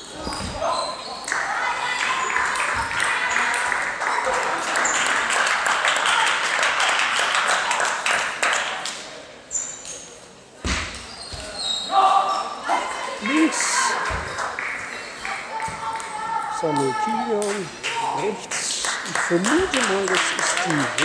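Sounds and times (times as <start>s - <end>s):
crowd clapping: 1.3s - 9.1s, 13.2s - 21.0s
spectators talking: 12.2s - 21.0s.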